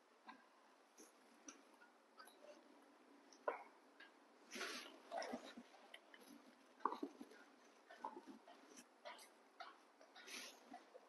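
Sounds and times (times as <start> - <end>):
monkeys eating: 0.9 - 11.0.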